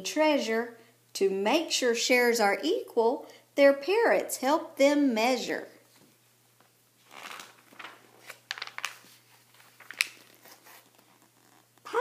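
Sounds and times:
book pages turning: 7.0 - 11.9.

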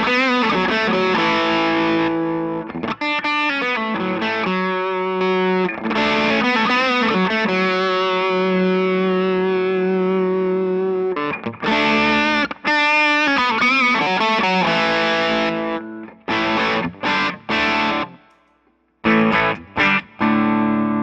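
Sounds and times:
overdriven electric guitar: 0.0 - 21.0.

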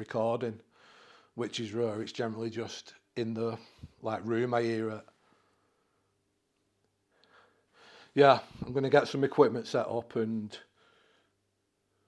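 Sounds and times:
faint breath: 0.7 - 1.4, 5.1 - 6.2, 7.1 - 8.7, 10.7 - 12.0.

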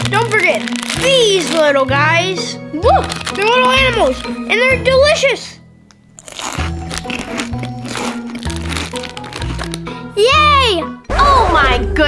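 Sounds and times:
child crunching crackers: 0.0 - 1.8, 3.0 - 4.4, 6.2 - 9.9.

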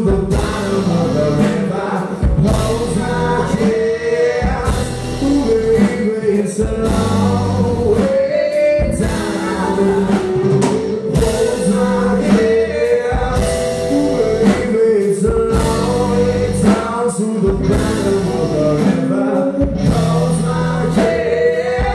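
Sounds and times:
bass guitar: 0.0 - 21.9
drums: 0.0 - 21.9
electric guitars: 0.0 - 21.9
keyboard: 0.0 - 21.9
person singing long notes: 0.0 - 21.9.

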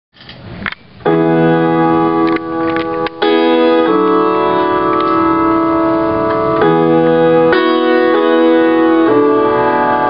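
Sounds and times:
piano chord: 1.0 - 10.0.

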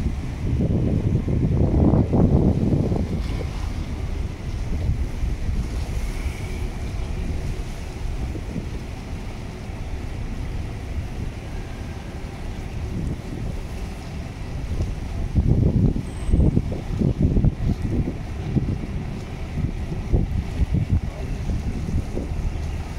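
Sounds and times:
boat engines rumbling: 0.0 - 22.9
harbour water: 0.0 - 22.9
wind buffeting microphone: 0.0 - 22.9.

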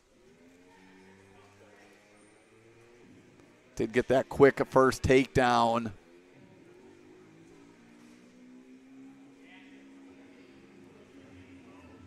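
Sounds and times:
distant voices: 0.1 - 12.0.

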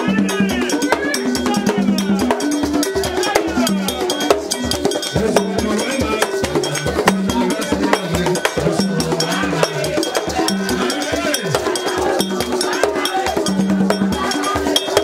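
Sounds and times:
fast hand drumming: 0.0 - 15.0
person singing: 0.0 - 15.0
struck metal bell: 0.3 - 15.0.

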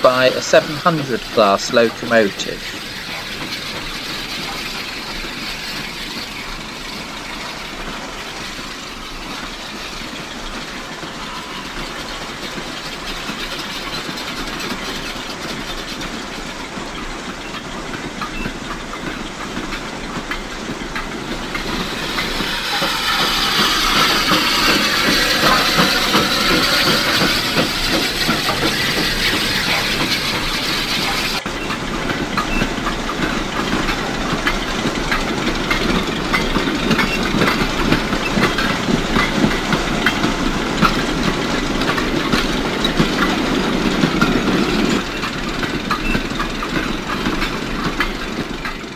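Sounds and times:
steam hiss: 0.0 - 16.6, 20.6 - 31.5
steam train running: 0.0 - 48.9.

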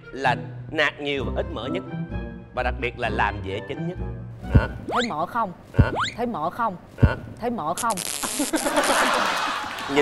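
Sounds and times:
electric zap static hiss: 7.8 - 8.8.

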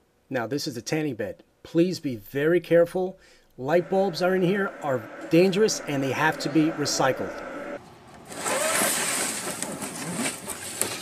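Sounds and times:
plastic cover rustling and scraping: 8.3 - 11.0.

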